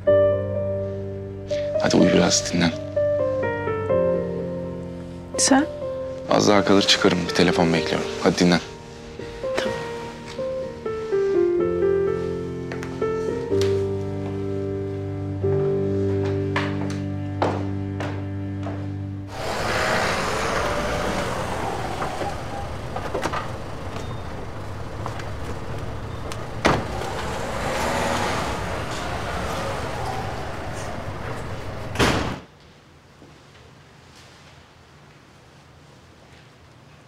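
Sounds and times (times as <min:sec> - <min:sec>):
music with held notes: 0:00.0 - 0:20.2
car engine running: 0:19.3 - 0:32.0
car door slamming: 0:19.4 - 0:32.4.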